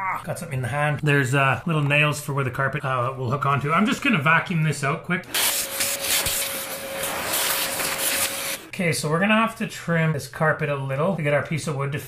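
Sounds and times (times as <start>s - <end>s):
vacuum cleaner running: 5.3s - 8.7s.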